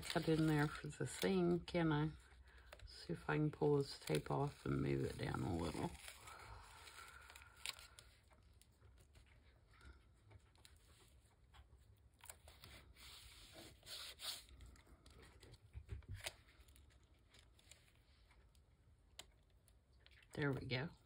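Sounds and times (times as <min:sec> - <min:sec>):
paper handling: 0:00.0 - 0:09.4, 0:10.3 - 0:18.6.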